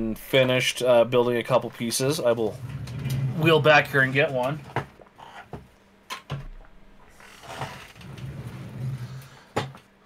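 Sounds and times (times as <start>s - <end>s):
wheeled chair rolling: 2.3s - 4.9s, 7.1s - 9.8s
rustling and scraping: 2.4s - 5.7s.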